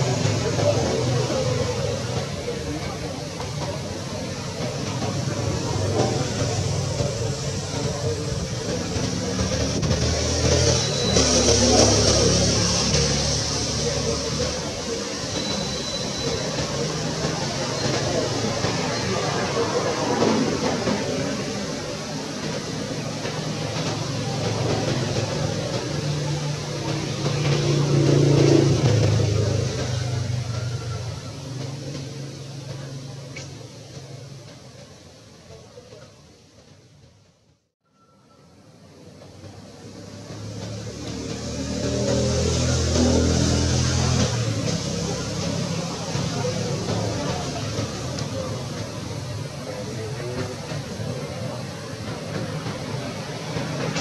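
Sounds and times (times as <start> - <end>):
passing vehicle engine hum: 0.0 - 34.5, 39.5 - 54.0.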